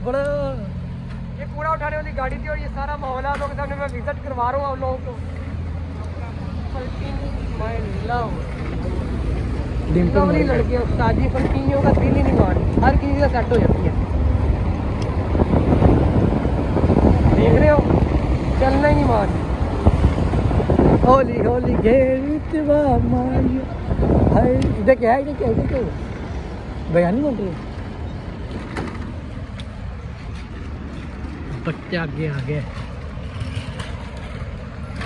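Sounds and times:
cars driving slowly past: 0.0s - 35.0s
road traffic rumble: 0.0s - 35.0s.

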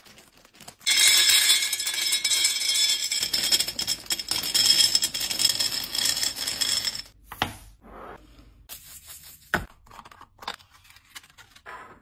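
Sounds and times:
dry pasta rattling into glass jar: 0.8s - 7.1s.

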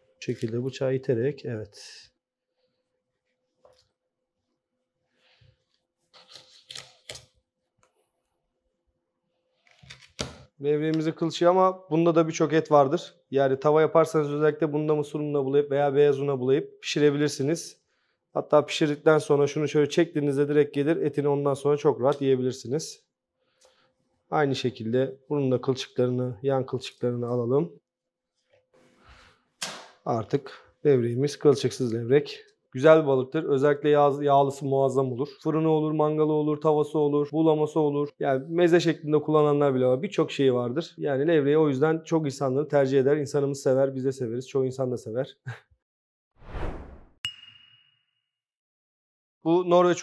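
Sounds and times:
knife swish: 46.4s - 47.1s.

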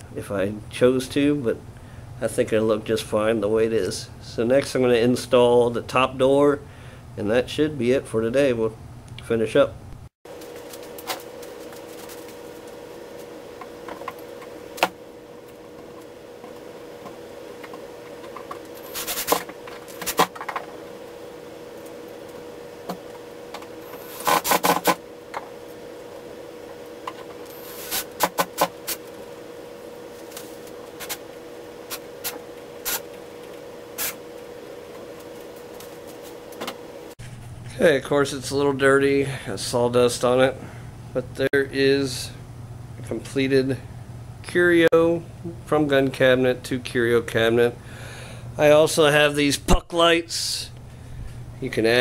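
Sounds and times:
steady hum: 0.0s - 52.0s.

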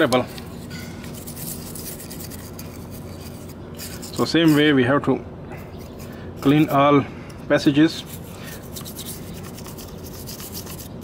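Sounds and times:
metal part being handled and wiped: 0.0s - 4.8s, 5.6s - 6.9s, 7.8s - 11.0s
small scrapes and ticks: 0.0s - 4.8s, 5.7s - 6.9s, 8.0s - 11.0s
steady low hum: 0.0s - 11.0s.

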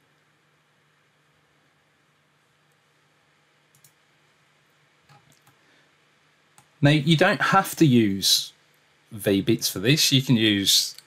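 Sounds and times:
computer mouse clicks: 3.7s - 4.0s, 5.0s - 5.6s.

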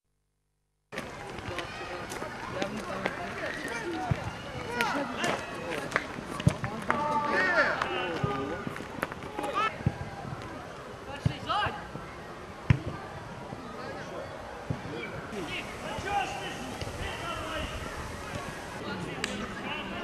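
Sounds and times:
players shouting: 15.3s - 20.0s.

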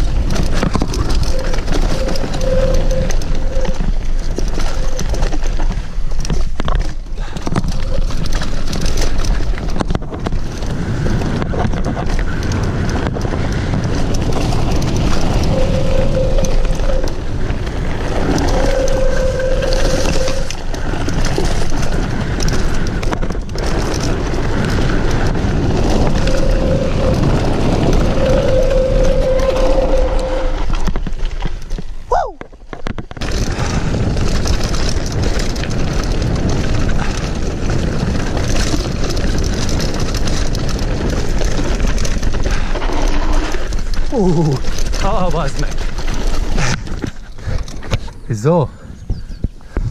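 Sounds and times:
wind buffeting: 0.0s - 32.4s, 33.0s - 49.9s
short steady whines: 1.0s - 5.4s, 15.1s - 20.8s, 25.8s - 30.9s.

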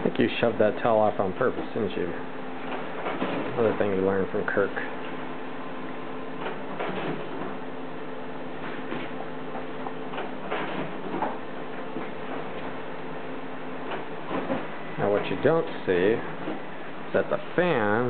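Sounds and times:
ceiling fan humming: 0.0s - 18.0s.

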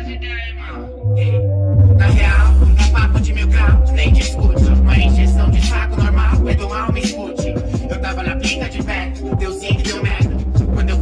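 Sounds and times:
deep bass: 0.0s - 11.0s
rapping over a drum beat: 0.0s - 11.0s.

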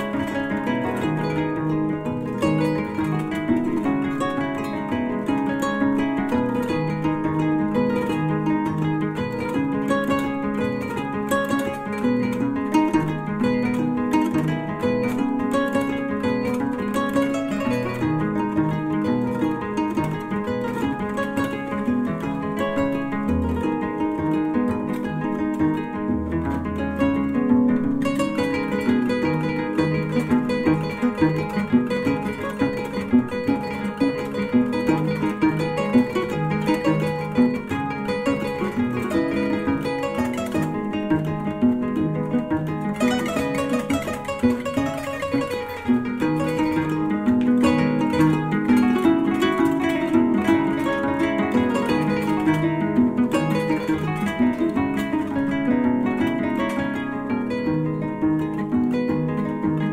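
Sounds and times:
plucked string instrument music: 0.0s - 59.9s.

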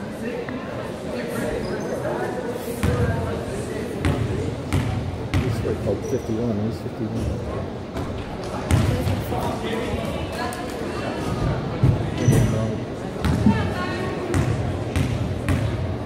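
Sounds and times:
chatter of spectators: 0.0s - 16.0s
basketball bouncing on gym floor: 2.8s - 3.1s, 4.0s - 5.6s, 8.7s - 9.2s, 13.2s - 13.6s, 14.3s - 15.8s.

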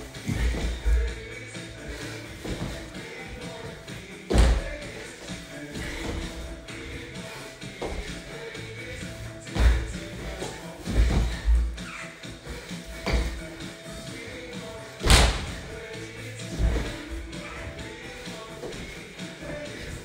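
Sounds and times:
music playing: 0.0s - 20.0s
body thumping on wood floor: 0.2s - 1.1s, 2.4s - 2.9s, 4.3s - 5.0s, 7.8s - 8.2s, 9.5s - 11.8s, 12.9s - 13.6s, 15.0s - 15.8s, 16.5s - 18.0s.

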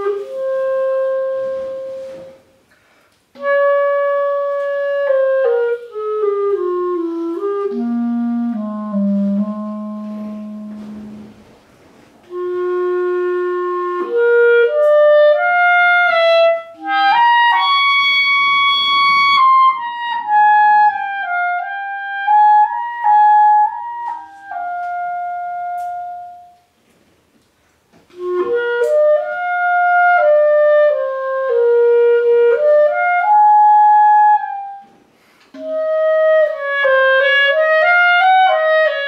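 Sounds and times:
clarinet low note: 0.0s - 2.6s, 3.4s - 11.6s, 12.2s - 26.7s, 28.1s - 35.0s, 35.6s - 39.0s.

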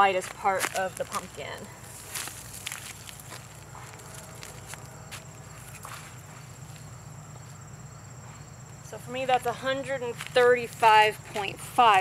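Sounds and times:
flip-flop footsteps: 0.0s - 7.6s, 10.0s - 12.0s
steady low hum: 0.0s - 12.0s.

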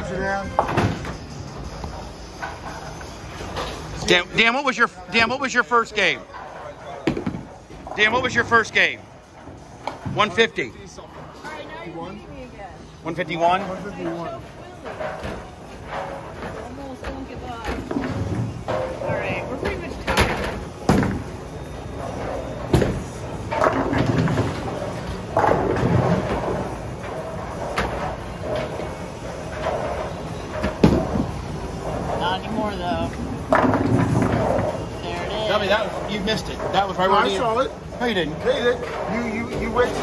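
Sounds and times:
music: 0.0s - 4.2s
bowling balls and pins knocking: 14.8s - 37.4s.

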